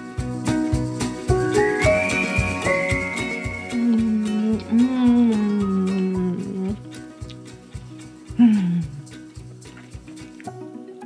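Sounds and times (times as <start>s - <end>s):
background music with beat: 0.0s - 11.0s
woman humming mmm: 3.4s - 7.0s, 8.3s - 9.2s.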